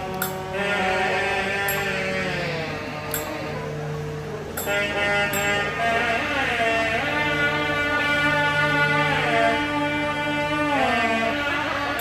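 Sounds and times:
sharp drum strokes: 0.0 - 5.8
double-reed horn melody: 0.0 - 12.0
steady drone: 0.0 - 12.0.

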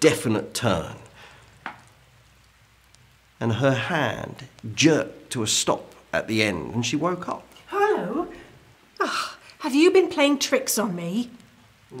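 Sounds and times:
faint hiss and low hum: 0.0 - 12.0.

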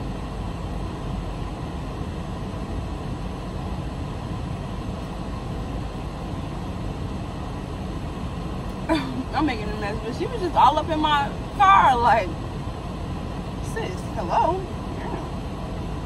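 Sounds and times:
ventilation fan: 0.0 - 16.0.

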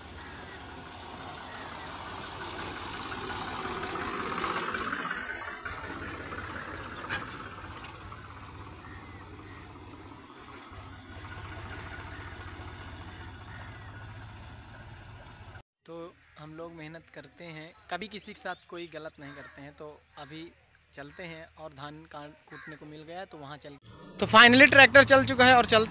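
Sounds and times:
tractor diesel engines passing: 0.0 - 15.6, 23.8 - 25.9.

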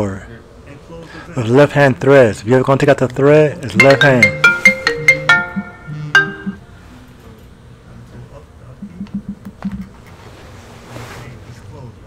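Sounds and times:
electronic phone ringtone: 3.7 - 6.6.

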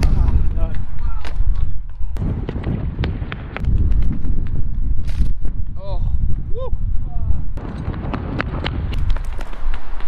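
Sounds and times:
footfalls and scuffs on tarmac: 0.0 - 5.7, 7.6 - 10.0
wind buffeting microphone: 0.0 - 10.0.

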